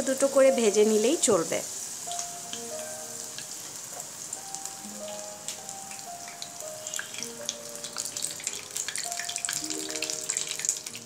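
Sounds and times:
fish deep-frying in oil: 0.0s - 11.0s.

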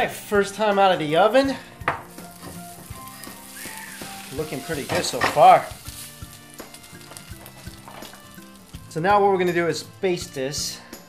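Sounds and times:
soft background music: 0.0s - 11.0s
meat sizzling on a tray: 2.1s - 10.3s.

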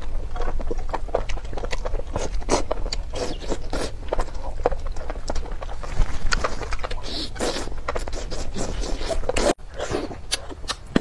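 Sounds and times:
slurping noodles: 5.8s - 10.5s.

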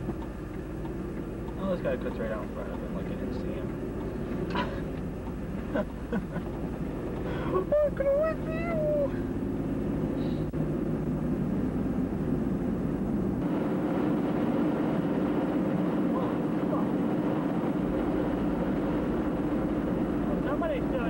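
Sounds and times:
car engine drone: 0.0s - 21.0s.

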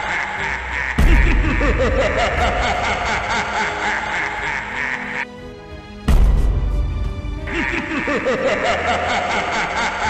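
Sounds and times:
layered boy laughing: 0.0s - 5.2s, 7.5s - 10.0s
background music: 0.0s - 10.0s.

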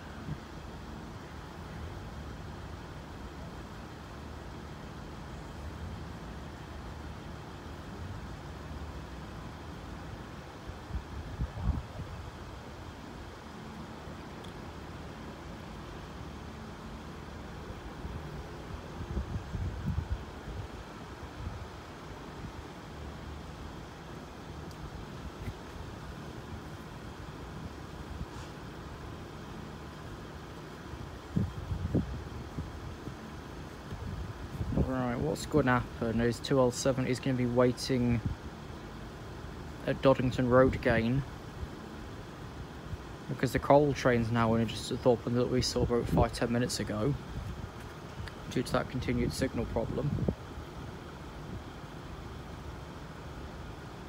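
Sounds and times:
road traffic rumble: 0.0s - 54.0s.

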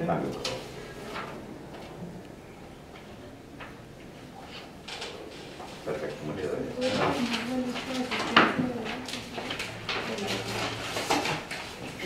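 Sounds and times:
papers being handled: 4.5s - 12.0s
quiet voices: 5.8s - 10.8s.

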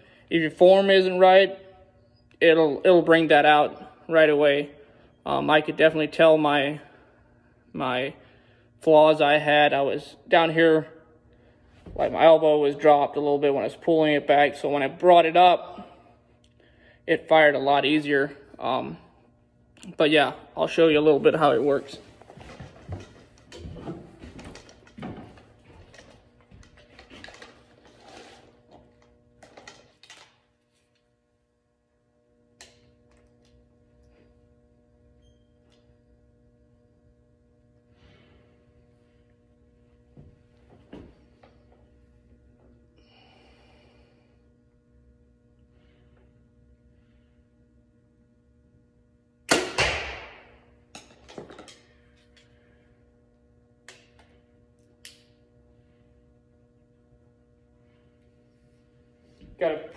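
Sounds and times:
low steady hum: 0.0s - 59.9s
bow firing sharp crack: 49.5s - 50.7s.

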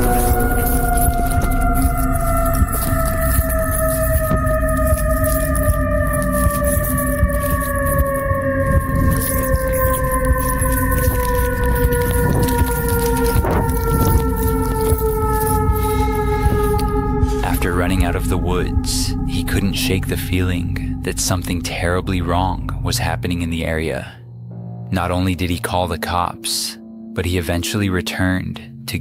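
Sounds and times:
running through undergrowth: 0.0s - 17.1s
long tone sinking in pitch: 0.0s - 25.4s.

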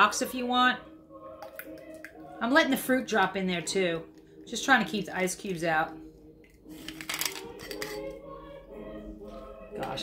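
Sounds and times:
ice rattling in shaker tin: 6.8s - 8.0s.

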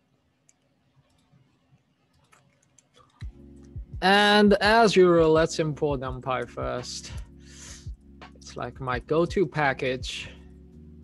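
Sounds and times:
keyboard and mouse clicks: 0.4s - 3.8s.

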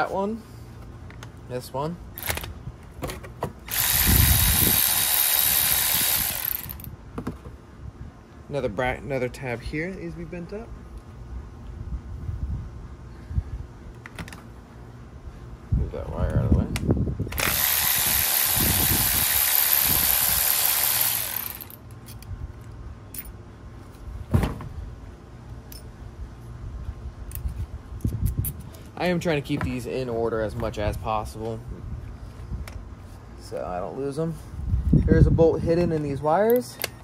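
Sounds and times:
cordless ratchet running: 3.6s - 6.9s, 17.3s - 22.2s.

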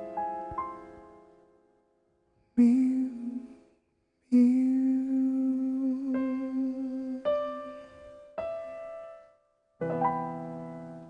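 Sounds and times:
piano chord: 9.8s - 11.0s.

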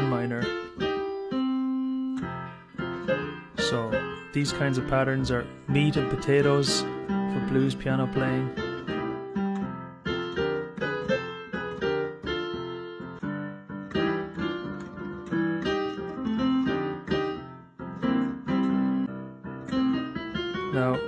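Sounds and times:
blues piano: 0.0s - 21.0s.

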